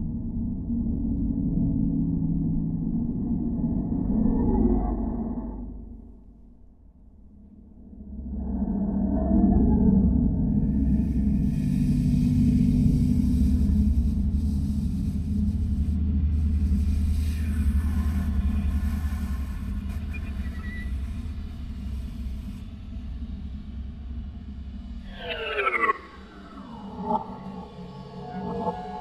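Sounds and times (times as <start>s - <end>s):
low steady drone: 0.0s - 29.0s.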